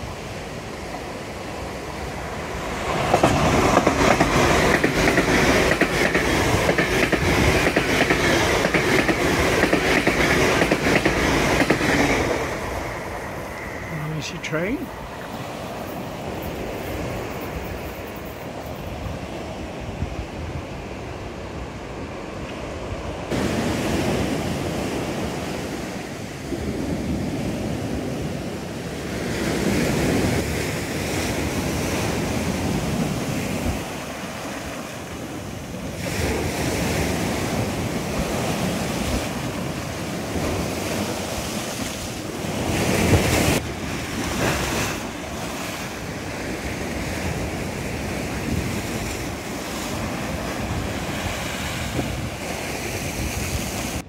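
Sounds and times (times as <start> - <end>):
wind buffeting microphone: 22.8 - 54.0.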